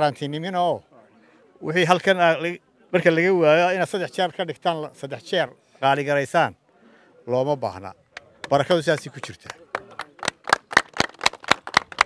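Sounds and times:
hands clapping rhythmically: 0:08.2 - 0:12.0.

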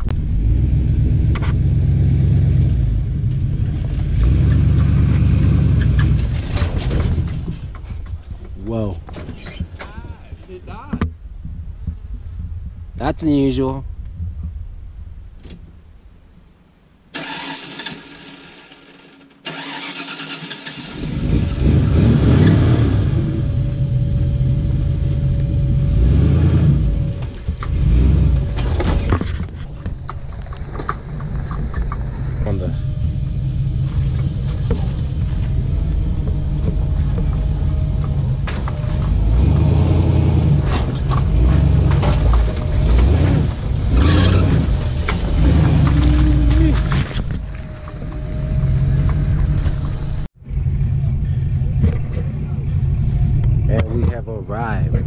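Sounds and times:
pickup truck engine revving: 0:00.0 - 0:07.2, 0:19.5 - 0:29.2, 0:32.0 - 0:53.8.

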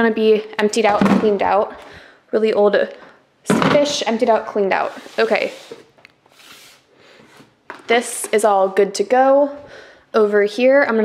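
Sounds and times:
woman speaking: 0:00.0 - 0:05.7, 0:07.9 - 0:09.6, 0:10.2 - 0:11.0
plastic containers rustling: 0:03.5 - 0:08.9.

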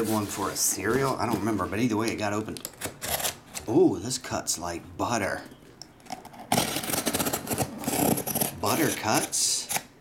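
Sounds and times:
packing tape ripping off cardboard: 0:06.4 - 0:09.2.

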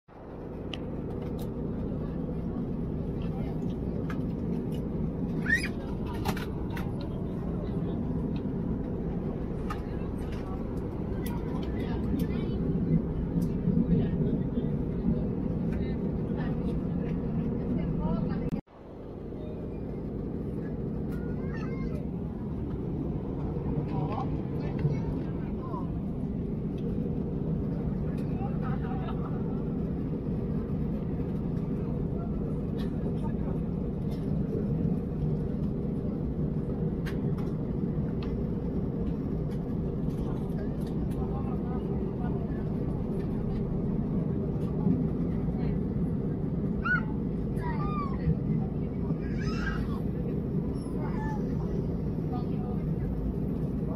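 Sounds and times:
airplane cabin engine drone: 0:00.1 - 0:53.9
faint passenger voices: 0:00.1 - 0:53.9.

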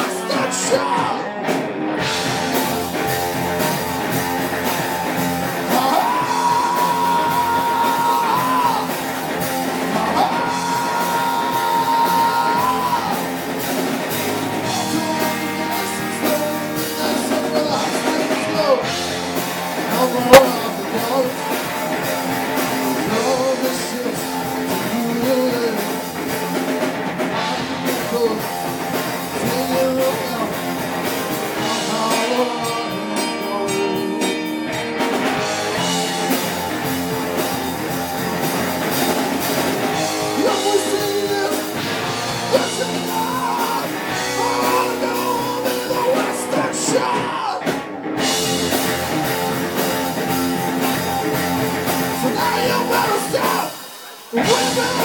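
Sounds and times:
man singing: 0:00.0 - 0:01.6, 0:05.5 - 0:26.6, 0:27.3 - 0:36.7, 0:39.0 - 0:48.5, 0:51.8 - 0:55.0
rock band playing: 0:00.0 - 0:55.0.

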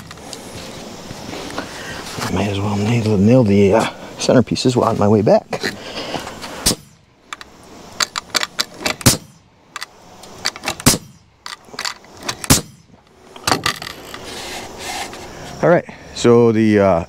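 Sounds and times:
nail gun shots: 0:06.6 - 0:07.0, 0:08.0 - 0:09.4, 0:10.5 - 0:11.2, 0:12.2 - 0:12.9.

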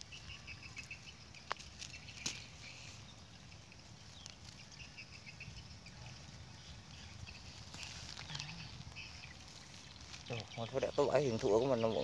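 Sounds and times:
rustling in dry leaves: 0:00.0 - 0:12.0.

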